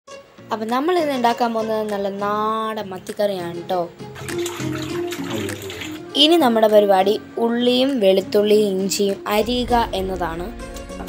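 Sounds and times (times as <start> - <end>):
background music: 0.1 - 11.0
water splashing in a steel bowl: 4.1 - 6.2.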